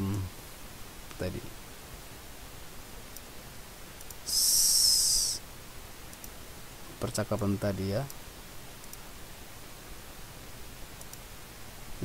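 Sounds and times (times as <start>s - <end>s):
high-pitched whistling hiss: 4.2s - 5.4s.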